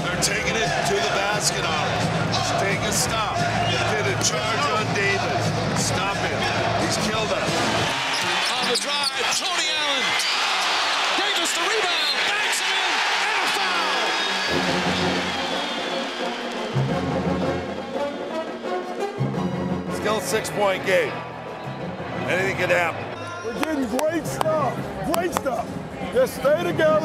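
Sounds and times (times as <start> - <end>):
loud arena crowd: 0.0 - 27.0
film score music: 14.5 - 22.3.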